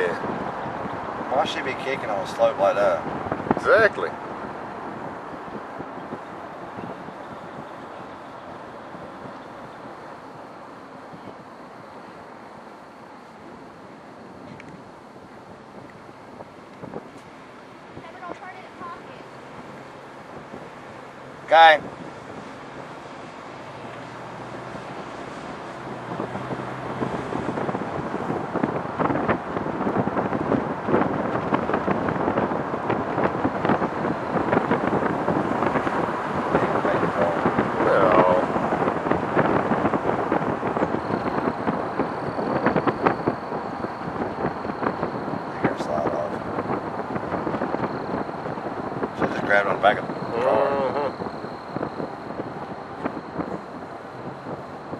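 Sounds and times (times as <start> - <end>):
rushing road movement noise: 0.0 - 54.9
wind buffeting microphone: 0.0 - 54.9.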